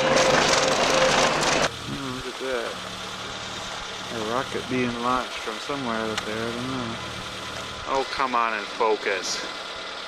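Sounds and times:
car engine driving: 0.0 - 10.0
steady hum: 0.0 - 10.0
tyres on dirt road: 0.0 - 10.0.

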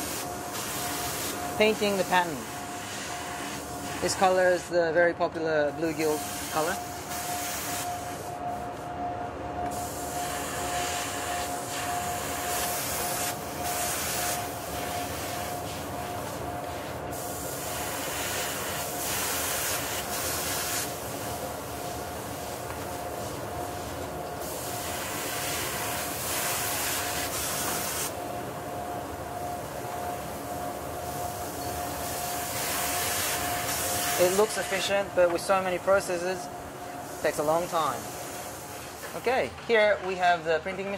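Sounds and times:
airbrush spraying hissing bursts: 0.0 - 4.4, 6.0 - 8.4, 9.7 - 21.0, 21.7 - 28.2, 31.2 - 35.0, 37.0 - 39.1
machine hum with faint whine: 0.0 - 40.9.

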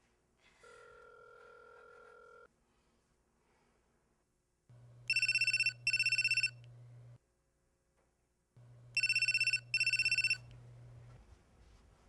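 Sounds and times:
telephone ringing: 0.6 - 2.5, 5.1 - 6.7, 9.0 - 10.5
low steady hum: 4.7 - 12.0.

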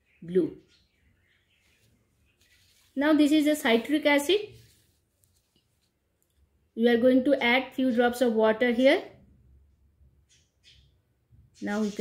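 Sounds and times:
person speaking: 2.7 - 5.0, 11.6 - 12.0.

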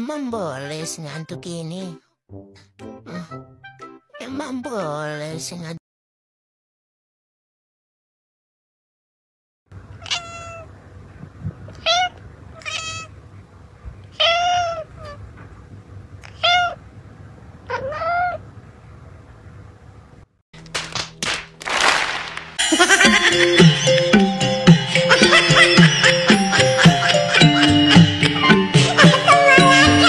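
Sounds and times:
cat meowing: 10.0 - 10.7, 11.7 - 13.1, 14.1 - 15.2, 16.2 - 16.8, 17.6 - 18.4.

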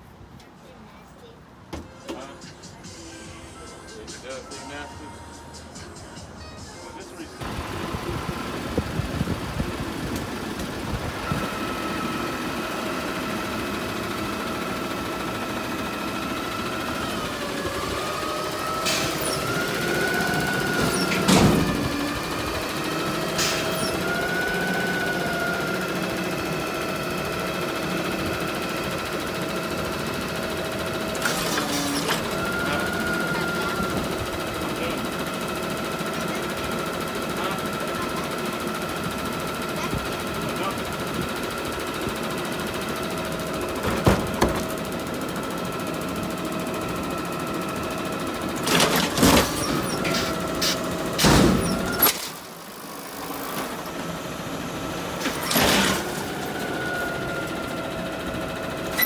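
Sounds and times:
garbage truck mechanical whine: 7.2 - 59.0.

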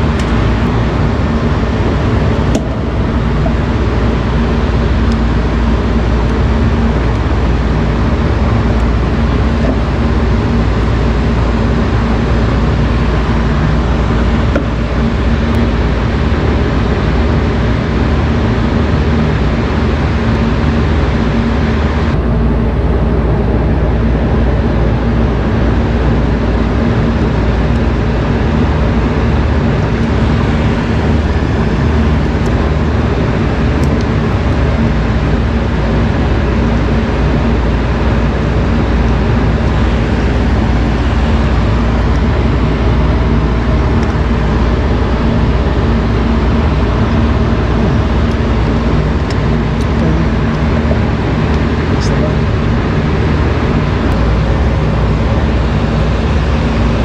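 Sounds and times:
loud mechanical drone: 0.0 - 57.0
low hum: 0.0 - 57.0.

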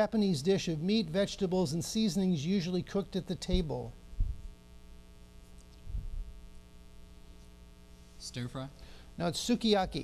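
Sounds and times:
electrical mains hum: 0.0 - 10.0
dull low thumps: 3.5 - 4.5, 5.9 - 6.4.

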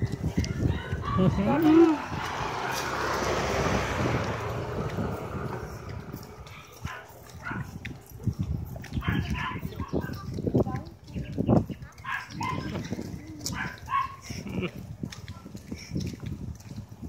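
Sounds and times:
dog barking: 0.0 - 1.7, 6.4 - 8.4, 9.0 - 9.9, 12.0 - 12.7, 13.5 - 14.2.

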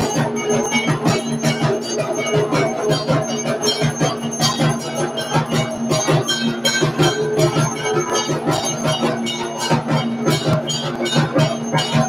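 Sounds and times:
drums beaten fast: 0.0 - 12.0
ringing metallic tones: 0.0 - 12.0.

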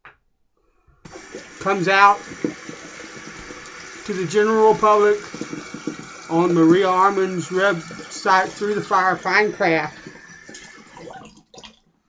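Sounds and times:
steady hiss: 1.1 - 11.0
man speaking: 4.1 - 5.3, 6.3 - 10.0.

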